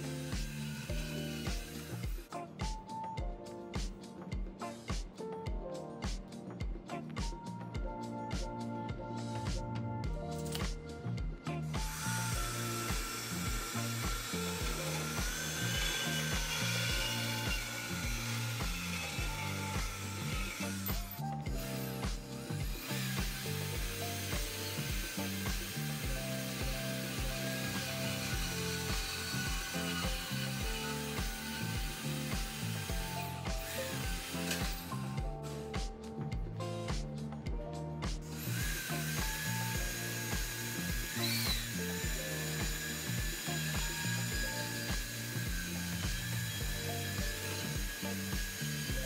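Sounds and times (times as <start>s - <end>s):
band saw cutting steel tube: 0.0s - 2.5s, 11.5s - 35.8s, 38.2s - 49.0s
background music with steady beat: 0.0s - 49.0s.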